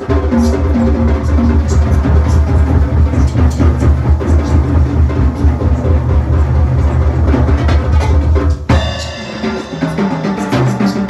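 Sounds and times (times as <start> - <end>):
drum kit groove with cymbals: 0.0 - 11.0
heavy low bass: 0.0 - 11.0.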